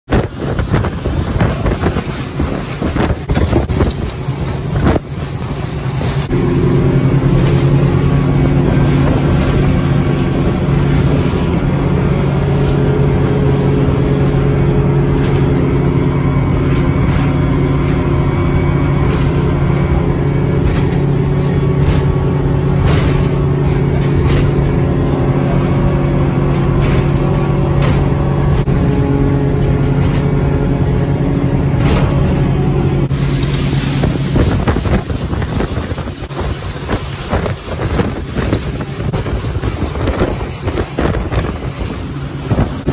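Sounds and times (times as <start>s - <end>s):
motorboat engine droning: 0.0s - 42.9s
water rushing from wake: 0.0s - 42.9s
wind on microphone: 0.1s - 42.9s.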